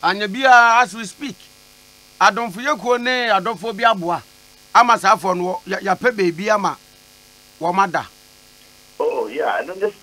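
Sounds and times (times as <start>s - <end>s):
man talking over telephone: 0.0s - 1.4s, 2.2s - 6.8s, 7.6s - 8.1s, 9.0s - 10.0s
faint electrical hum: 0.0s - 10.0s.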